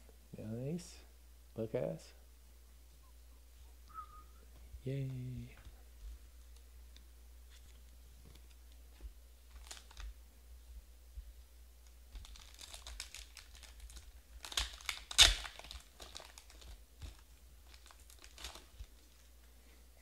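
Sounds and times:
cards rustling: 0:09.4 - 0:10.2, 0:12.2 - 0:19.4
foil pack crinkling: 0:09.4 - 0:10.2, 0:12.1 - 0:19.4
foil pack ripping open: 0:09.5 - 0:10.0, 0:12.2 - 0:19.2.

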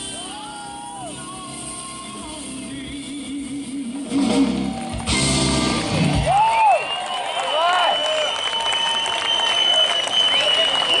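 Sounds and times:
crowd applauding and cheering: 0:03.8 - 0:11.0.

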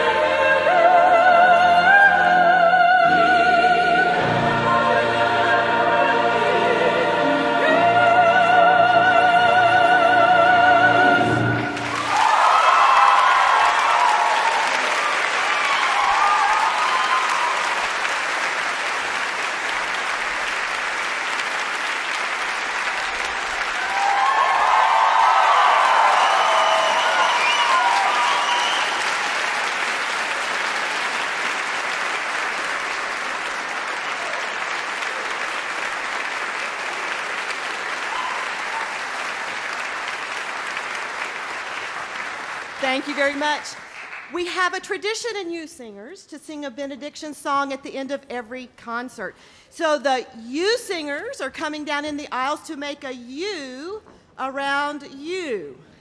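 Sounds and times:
audience applauding: 0:11.5 - 0:44.4.

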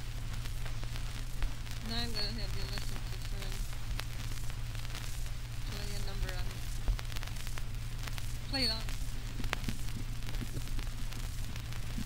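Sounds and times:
low hum: 0:00.0 - 0:12.0
record hiss and crackles: 0:00.0 - 0:12.0.

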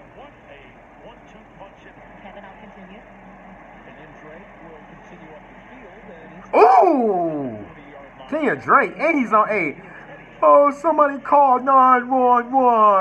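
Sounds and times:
faint television speech: 0:00.0 - 0:13.0
steady low hum: 0:00.0 - 0:13.0.

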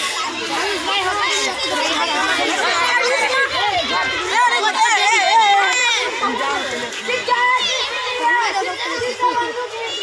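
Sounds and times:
crowd of children talking: 0:00.0 - 0:10.0.

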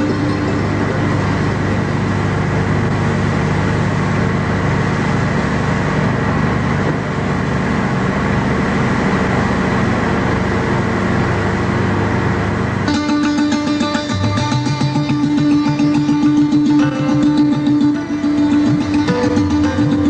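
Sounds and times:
low hum: 0:00.0 - 0:12.9.

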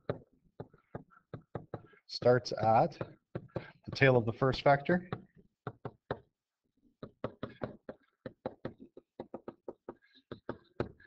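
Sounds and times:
stylus tapping on writing surface: 0:00.0 - 0:01.9, 0:05.1 - 0:06.3, 0:07.0 - 0:11.0.

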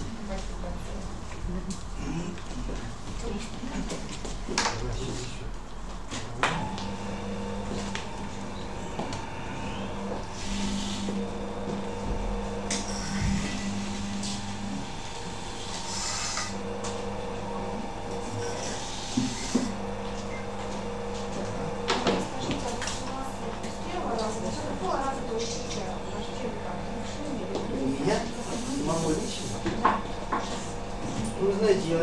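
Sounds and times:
potter's wheel motor hum: 0:00.0 - 0:32.0.

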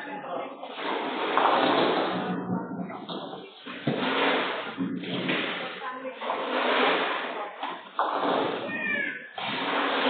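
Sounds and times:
bowling balls rolling: 0:00.0 - 0:10.0.

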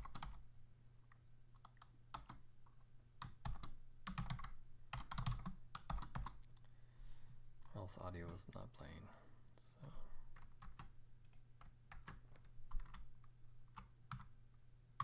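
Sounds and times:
computer keyboard typing: 0:00.0 - 0:00.4, 0:01.1 - 0:06.5, 0:10.3 - 0:14.3.

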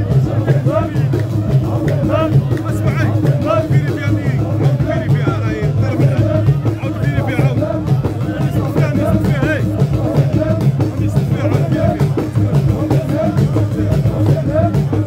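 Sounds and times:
crowd noise: 0:00.0 - 0:15.0
men chanting together: 0:00.0 - 0:15.0
steady drum beat: 0:00.0 - 0:15.0.

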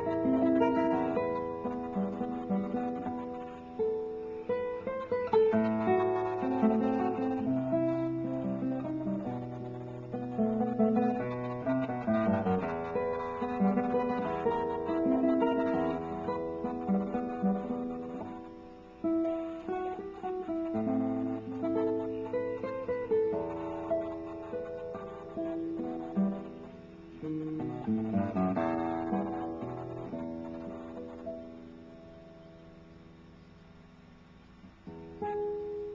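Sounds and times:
classical guitar fingerstyle: 0:00.0 - 0:35.9.

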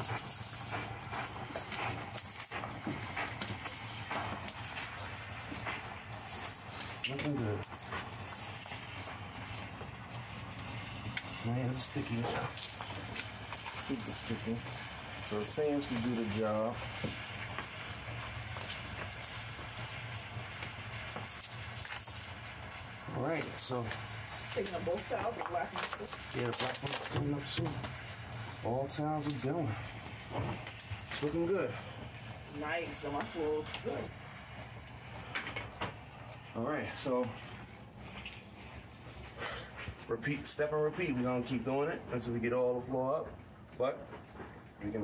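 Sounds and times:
steady low hum: 0:00.0 - 0:45.0
tile scraping with crackles: 0:20.5 - 0:28.0.

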